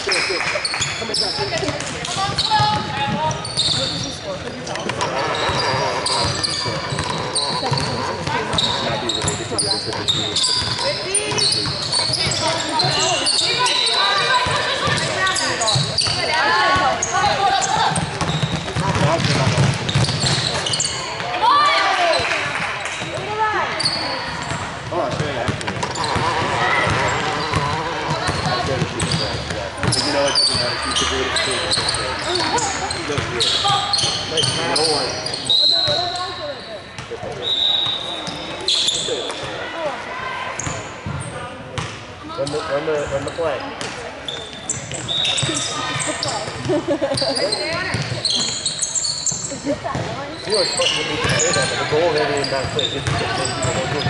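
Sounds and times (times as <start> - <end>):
players calling out: 0.0 - 41.6, 42.2 - 54.0
sneakers squeaking: 0.0 - 54.0
basketball dribbling: 1.5 - 4.1, 17.3 - 20.7.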